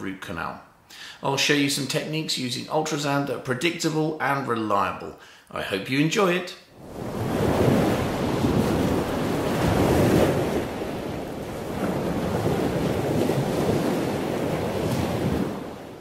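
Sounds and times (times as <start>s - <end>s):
sea waves washing ashore: 6.8s - 16.0s
wind on microphone: 6.8s - 16.0s.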